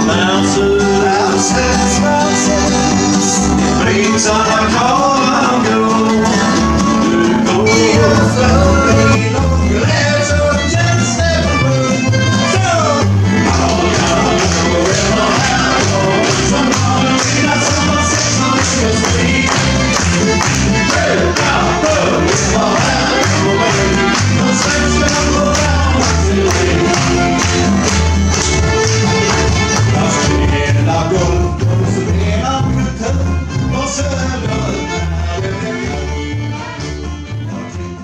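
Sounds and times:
acoustic string band playing: 0.0s - 38.0s.

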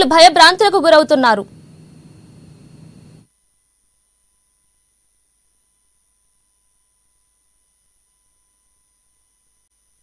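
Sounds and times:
recording hiss with low hum: 0.0s - 10.0s.

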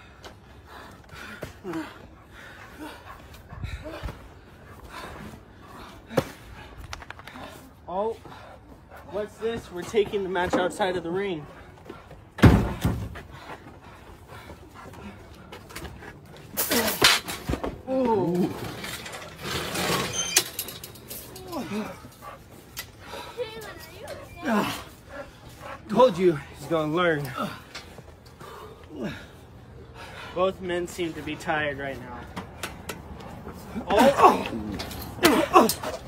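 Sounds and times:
chain-link gate rattling: 18.5s - 22.2s
gate squeak: 19.6s - 20.8s.

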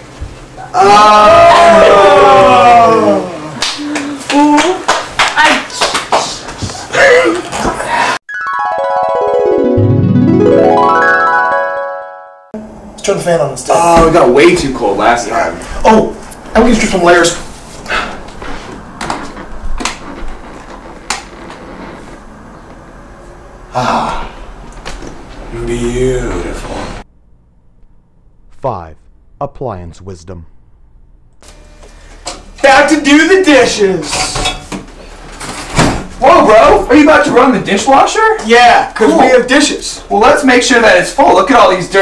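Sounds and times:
hand claps: 3.6s - 6.7s
low steady hum: 25.5s - 35.4s.

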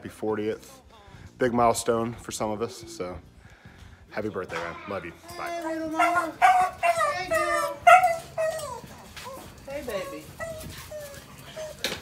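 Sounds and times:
dog whining and yowling: 5.9s - 12.0s.

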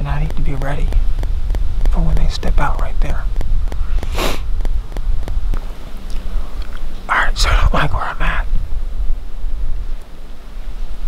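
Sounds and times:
low rumble on microphone: 0.0s - 11.0s
person sniffing: 3.9s - 4.5s.

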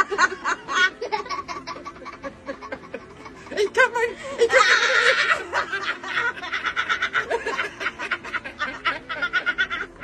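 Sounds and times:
man and woman laughing: 0.0s - 3.7s, 4.3s - 10.0s.

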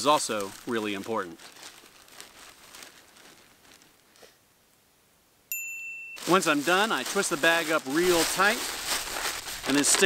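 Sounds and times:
high-pitched ting chime: 5.5s - 6.4s.

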